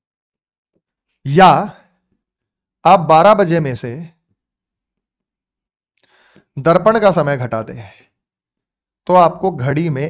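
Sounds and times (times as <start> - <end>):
person speaking: 1.2 - 2.0, 2.8 - 4.5, 6.5 - 8.3, 9.0 - 10.0.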